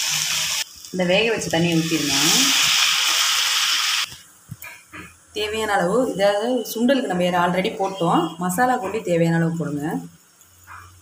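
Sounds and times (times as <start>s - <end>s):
liquid sizzling in hot pan: 0.0s - 4.8s.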